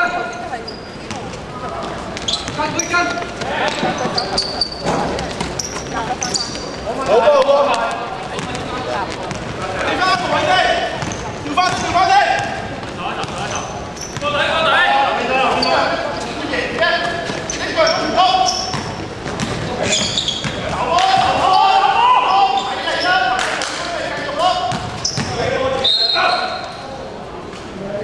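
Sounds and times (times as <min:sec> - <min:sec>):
basketball bouncing: 0:08.2 - 0:10.3, 0:10.9 - 0:14.3, 0:18.6 - 0:21.4, 0:24.7 - 0:25.5
players shouting in gym: 0:19.8 - 0:26.7.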